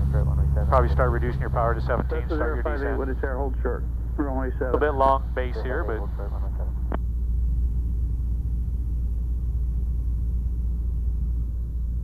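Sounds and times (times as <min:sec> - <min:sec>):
aircraft engine drone: 0:00.0 - 0:12.0.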